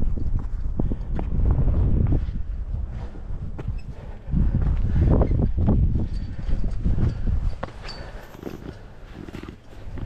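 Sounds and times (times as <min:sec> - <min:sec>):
footsteps on sandstone: 0:00.0 - 0:06.0
low microphone rumble: 0:00.0 - 0:07.8.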